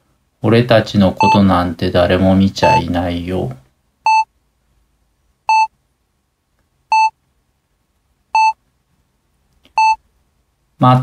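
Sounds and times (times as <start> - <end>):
short electronic beeps: 5.5 - 5.7, 6.9 - 7.2, 8.4 - 8.6, 9.8 - 10.0.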